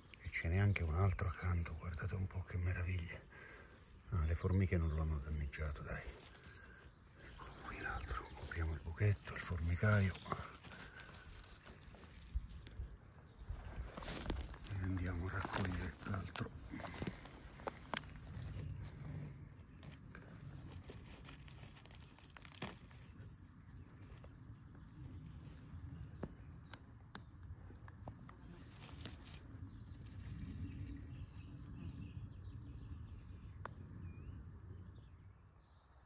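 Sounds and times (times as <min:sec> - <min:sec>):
twigs cracking underfoot: 0:00.0 - 0:32.0
footsteps through leaf litter: 0:05.6 - 0:24.2, 0:28.6 - 0:30.9.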